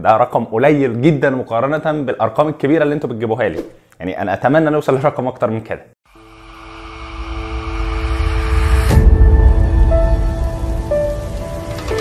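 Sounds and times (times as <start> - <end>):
low rumble riser: 6.1 - 12.0.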